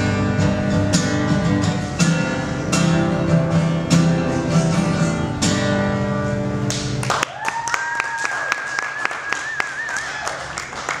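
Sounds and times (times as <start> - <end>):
acoustic guitar chord: 0.0 - 7.0
small audience clapping: 6.7 - 11.0
long high cheer: 7.0 - 11.0.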